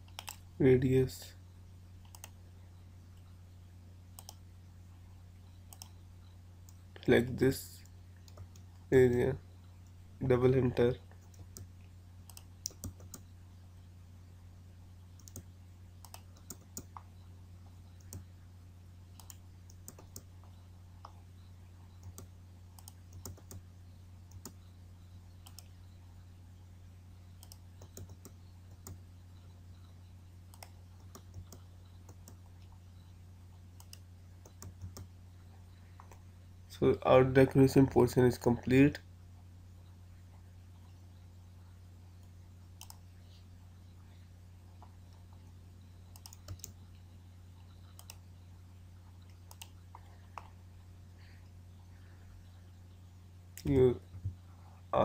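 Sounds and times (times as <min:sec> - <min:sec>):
keyboard and mouse clicks: 0:00.0 - 0:00.4, 0:02.0 - 0:02.4, 0:08.2 - 0:09.2, 0:12.3 - 0:13.3, 0:15.2 - 0:17.1, 0:19.2 - 0:21.2, 0:22.0 - 0:23.6, 0:24.3 - 0:24.7, 0:27.4 - 0:29.0, 0:30.5 - 0:32.8, 0:33.8 - 0:35.1, 0:46.1 - 0:46.8, 0:47.7 - 0:48.2, 0:49.2 - 0:50.6
steady low hum: 0:00.0 - 0:55.0.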